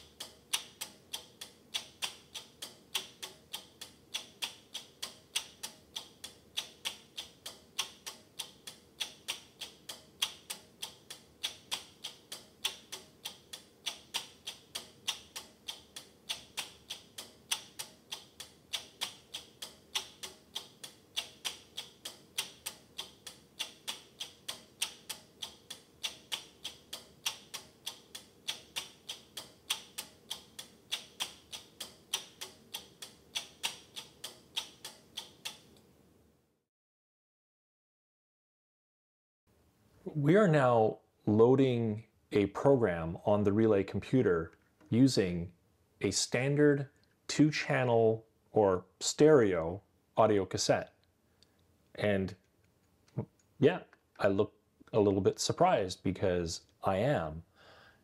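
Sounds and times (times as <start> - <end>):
relays clicking rhythmically: 0.0 - 35.8.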